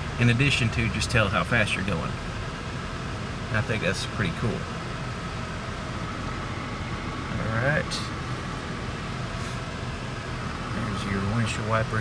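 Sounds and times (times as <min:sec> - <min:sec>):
air conditioning blower rushing: 0:00.0 - 0:12.0
faint steady whine: 0:00.0 - 0:12.0.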